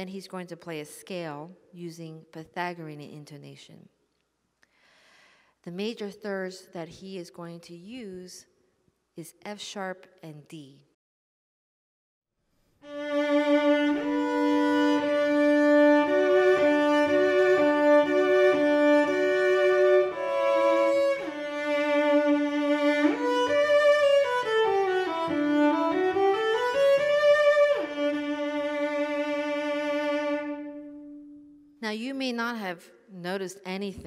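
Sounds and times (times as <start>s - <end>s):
solo cello bowed: 12.8s - 31.5s.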